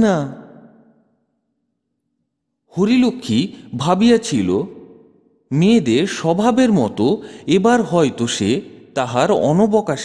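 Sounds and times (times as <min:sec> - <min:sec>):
man reading aloud: 0:02.7 - 0:04.8, 0:05.5 - 0:10.0.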